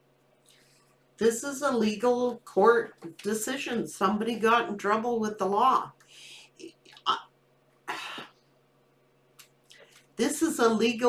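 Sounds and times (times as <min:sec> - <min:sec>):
woman clearing her throat: 0:07.9 - 0:08.4.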